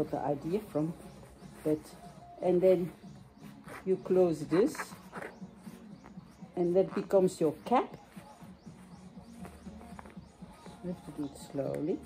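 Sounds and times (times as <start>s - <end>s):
fabric handling: 0.0s - 12.0s.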